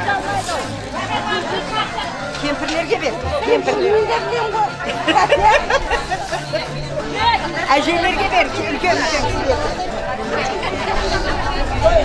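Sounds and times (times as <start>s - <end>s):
faint music: 0.0s - 12.0s
women chattering: 0.0s - 12.0s.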